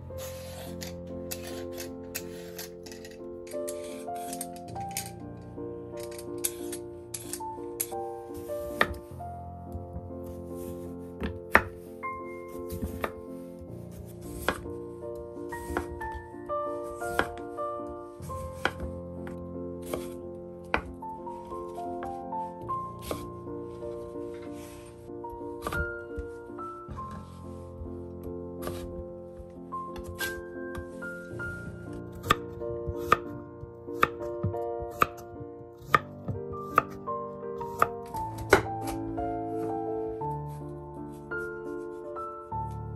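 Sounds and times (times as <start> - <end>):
soft background music: 0.0 - 42.9
knife chopping on wooden board: 11.2 - 11.8, 14.3 - 14.6, 15.6 - 15.9, 17.1 - 17.4, 18.6 - 18.9, 19.8 - 20.9, 32.2 - 33.3, 34.0 - 35.2, 35.8 - 37.0, 37.7 - 39.0
knife cutting on wooden board: 14.3 - 14.6, 17.1 - 17.4, 19.8 - 20.9.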